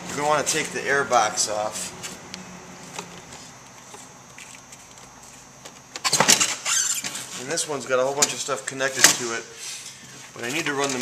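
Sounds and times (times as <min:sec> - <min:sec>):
plastic handling noises: 0:10.0 - 0:11.0.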